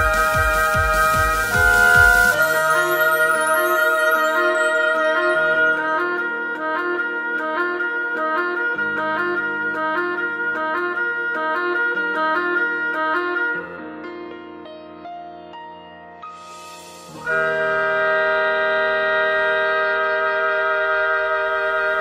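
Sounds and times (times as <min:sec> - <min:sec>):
electronic backing track: 0:00.0 - 0:13.4
oboe melody: 0:00.0 - 0:14.4, 0:16.9 - 0:22.0.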